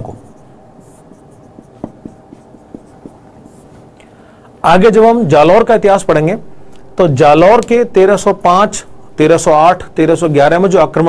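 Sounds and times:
marker pen writing on whiteboard: 0.0 - 4.0
marker tip tapping: 1.5 - 3.6.

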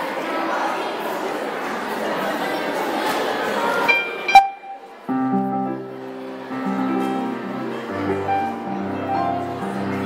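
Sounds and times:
audience chatter: 0.0 - 10.0
brief pitched note: 3.9 - 5.5.

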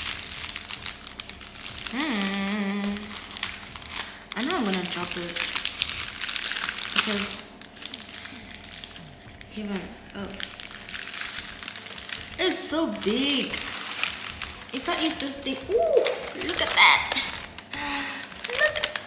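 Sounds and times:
paper wrapping crinkling: 0.0 - 19.0.

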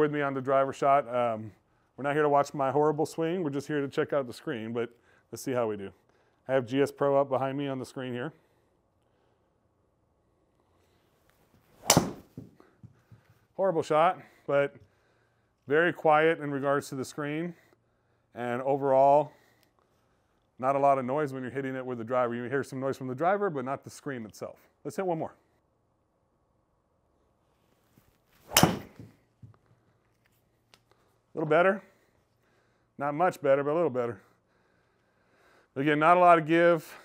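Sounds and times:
golf club swish: 11.6 - 12.5, 27.9 - 29.2
golf club striking ball: 11.8 - 12.5, 28.5 - 29.1.

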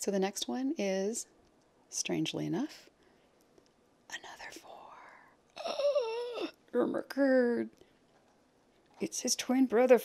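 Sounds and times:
woman whispering: 4.1 - 5.9.

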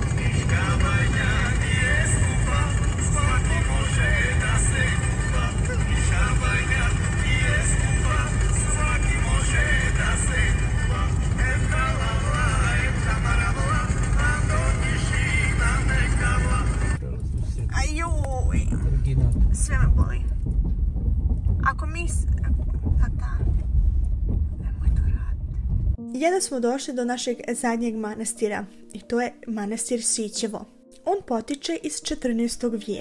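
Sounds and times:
music playing: 0.0 - 17.1, 26.0 - 33.0
car cabin road and engine rumble: 0.0 - 26.0.

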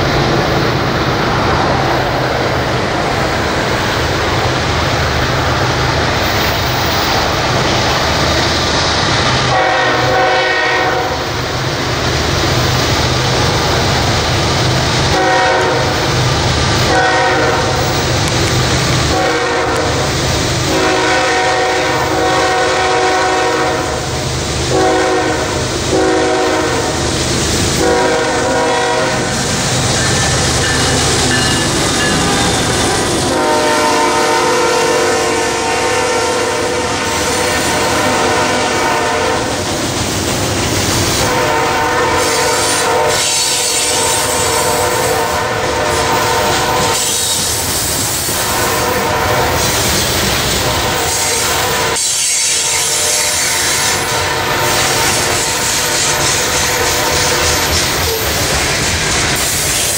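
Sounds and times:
wheels clacking on rails: 0.0 - 36.2, 37.0 - 59.9
train rumbling: 0.0 - 59.9
locomotive air horn blasts: 9.4 - 11.3, 15.1 - 16.1, 16.7 - 18.1, 19.0 - 27.1, 27.7 - 39.6, 41.2 - 47.6, 48.4 - 49.8, 50.6 - 58.5.

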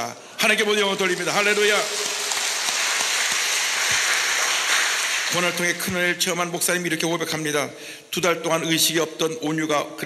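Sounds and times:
congregation clapping: 0.4 - 6.2.

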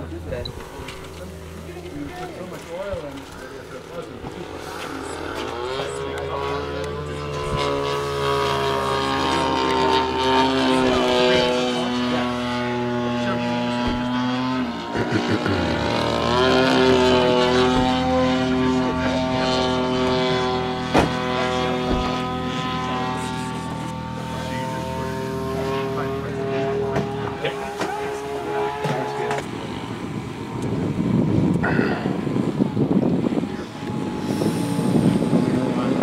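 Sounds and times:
model plane motor whine: 0.0 - 36.0.

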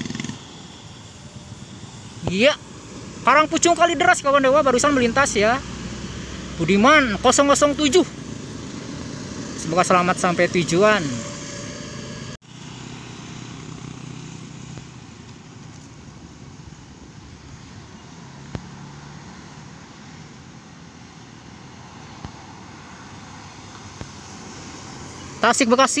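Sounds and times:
motorcycle engines humming: 0.0 - 26.0
road traffic noise: 0.0 - 26.0
coach approaching: 0.2 - 12.4.

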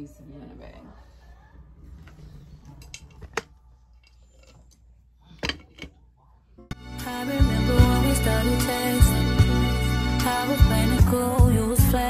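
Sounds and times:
backing music track: 6.7 - 12.0.

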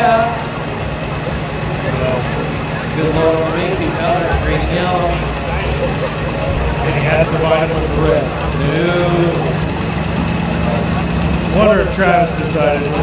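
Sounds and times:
indistinct voice: 0.0 - 13.0
tractor diesel engine running: 0.0 - 13.0.

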